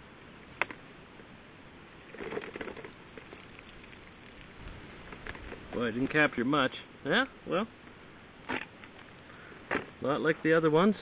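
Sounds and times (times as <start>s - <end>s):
water pouring and dripping: 2.7s - 5.9s
water splash: 2.9s - 5.2s.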